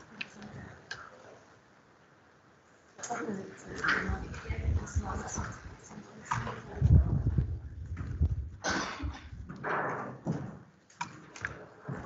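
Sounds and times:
low thumps and knocks: 0:06.3 - 0:10.6.

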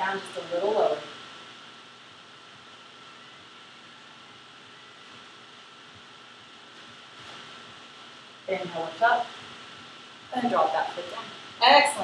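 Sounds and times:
faint thin whine: 0:00.0 - 0:12.0
room tone hiss: 0:00.0 - 0:12.0.

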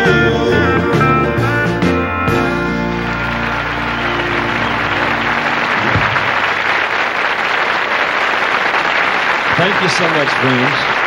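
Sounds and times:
band holding final chord: 0:00.0 - 0:06.8
audience applauding: 0:02.4 - 0:11.0.

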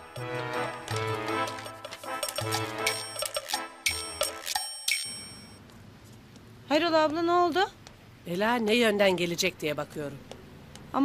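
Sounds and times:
music with struck pitched notes: 0:00.0 - 0:05.4.

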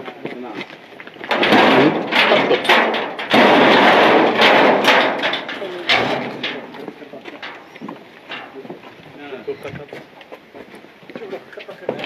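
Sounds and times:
door thumping and rattling: 0:01.3 - 0:07.6
men's voices: 0:05.3 - 0:10.4, 0:11.0 - 0:12.0.

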